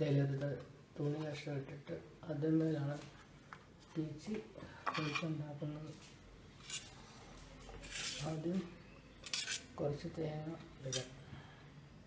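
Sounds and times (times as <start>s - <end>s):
steel kitchenware clinking: 9.2s - 9.8s.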